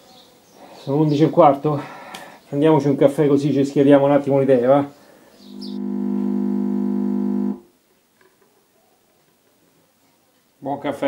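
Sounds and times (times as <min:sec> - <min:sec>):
sustained synth tone: 0:05.5 - 0:07.6.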